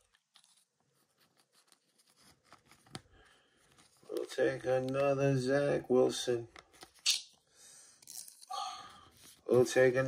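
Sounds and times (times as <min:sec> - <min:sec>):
card sleeve crinkling and ticks: 0:00.0 - 0:05.4.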